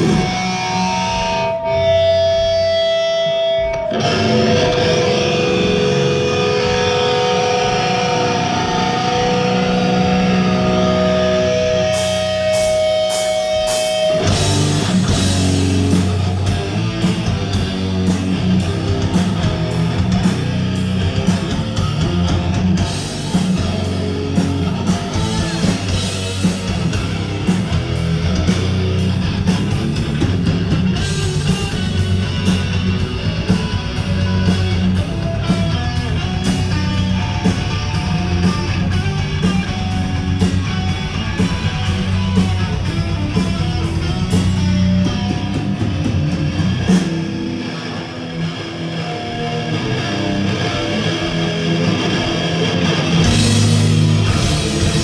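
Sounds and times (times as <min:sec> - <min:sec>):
distorted electric guitars: 0:00.0 - 0:55.0
heavy metal band playing riff: 0:00.0 - 0:55.0.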